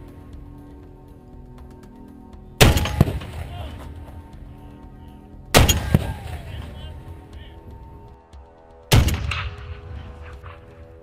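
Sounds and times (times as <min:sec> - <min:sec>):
rifle shots: 0:02.6 - 0:03.4, 0:05.6 - 0:06.2, 0:08.9 - 0:09.8
gunshot echo: 0:02.6 - 0:03.7, 0:05.6 - 0:06.4, 0:08.9 - 0:10.6.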